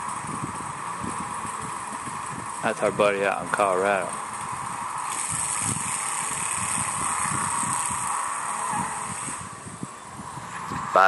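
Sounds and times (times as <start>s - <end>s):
car engine driving off: 0.0s - 11.0s.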